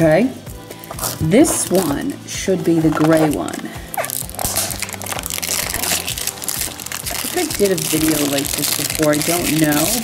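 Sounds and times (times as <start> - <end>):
background music: 0.0 - 10.0
plastic shrink wrap crinkling: 0.7 - 10.0.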